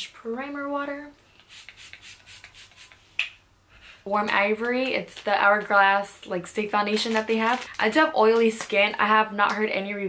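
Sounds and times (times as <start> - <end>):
spray bottle hissing sprays: 1.4 - 3.0.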